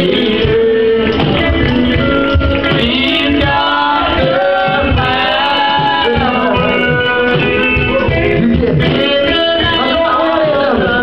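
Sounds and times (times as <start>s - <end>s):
gospel band with guitar: 0.0s - 11.0s
voices singing: 0.0s - 11.0s.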